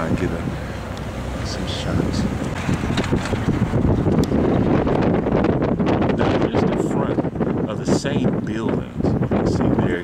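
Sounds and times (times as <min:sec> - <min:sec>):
car road rumble: 0:00.0 - 0:09.9
wind buffeting microphone: 0:00.0 - 0:10.0.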